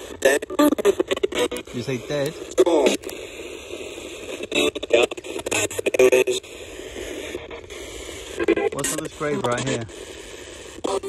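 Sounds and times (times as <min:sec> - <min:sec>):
radio clicks: 0:00.0 - 0:11.0
radio static hiss: 0:00.0 - 0:11.0
snatches of broadcast voices: 0:00.0 - 0:11.0.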